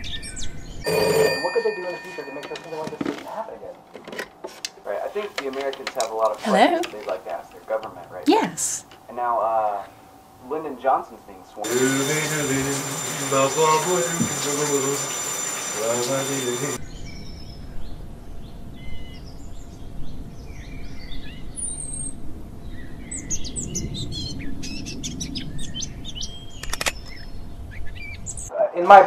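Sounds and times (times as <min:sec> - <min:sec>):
small birds chirping: 0:11.7 - 0:18.0.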